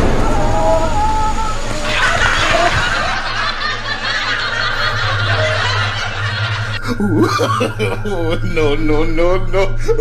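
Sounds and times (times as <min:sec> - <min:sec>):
steady low hum: 0:00.0 - 0:10.0
stifled snickering laughter: 0:01.8 - 0:08.8.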